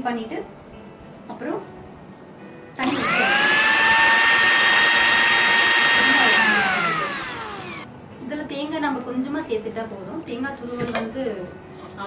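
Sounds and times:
mixer grinder motor whine: 0:02.8 - 0:07.9.

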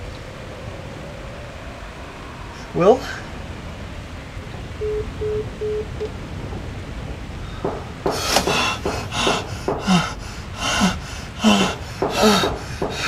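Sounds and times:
short electronic beeps: 0:04.8 - 0:06.1
man panting and gasping: 0:08.1 - 0:13.0.

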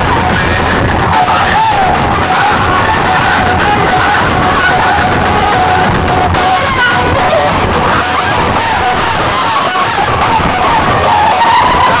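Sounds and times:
harsh distorted pa noise: 0:00.0 - 0:12.0.

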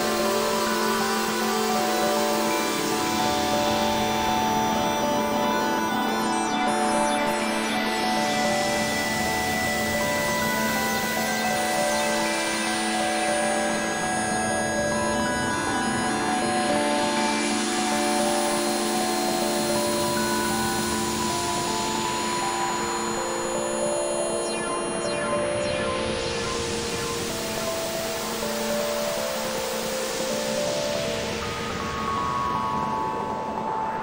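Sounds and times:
sequenced synthesizer notes: 0:19.4 - 0:31.7.

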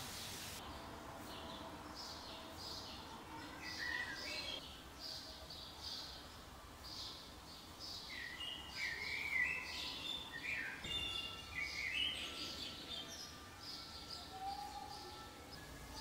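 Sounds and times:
faint steady hiss: 0:00.0 - 0:14.0
birds chirping: 0:00.0 - 0:16.0.

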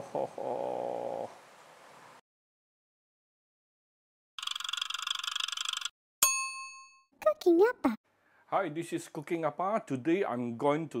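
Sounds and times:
bright ding: 0:06.2 - 0:07.1.

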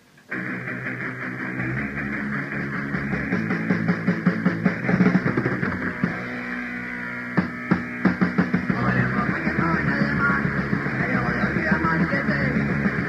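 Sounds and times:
muffled punk rock band: 0:00.3 - 0:13.0
hard drum hits: 0:07.4 - 0:09.0.

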